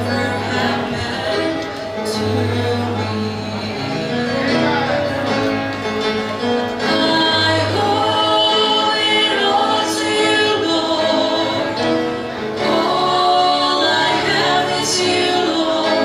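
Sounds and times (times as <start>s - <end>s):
women singing gospel in harmony: 0.0s - 4.1s, 6.8s - 16.0s
musical accompaniment: 0.0s - 16.0s.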